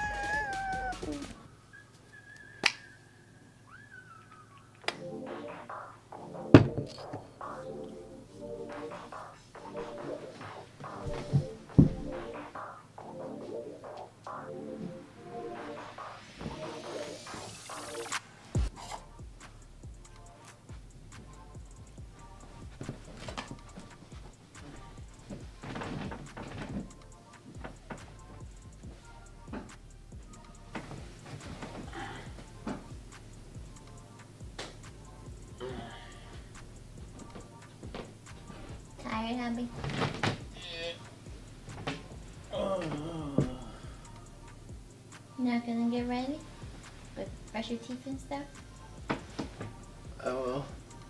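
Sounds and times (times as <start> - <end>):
soft background music: 4.6 - 51.0
bedding rustling: 8.2 - 13.8, 20.4 - 35.5, 36.2 - 43.0, 44.8 - 51.0.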